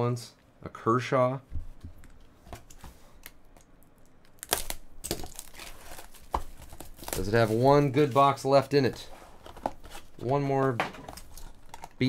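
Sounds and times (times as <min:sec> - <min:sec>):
plastic wrap crinkling and tearing: 0:04.2 - 0:10.3.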